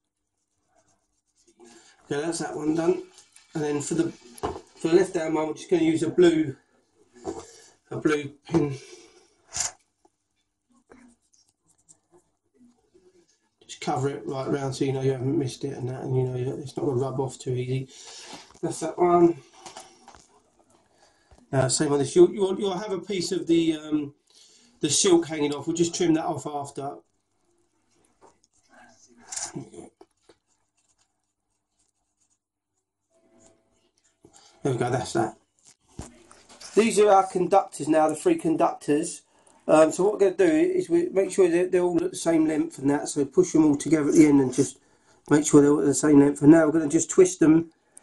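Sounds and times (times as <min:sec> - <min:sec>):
marker pen rubbing on wire: 0:00.0 - 0:01.6, 0:10.9 - 0:12.7, 0:28.4 - 0:34.2.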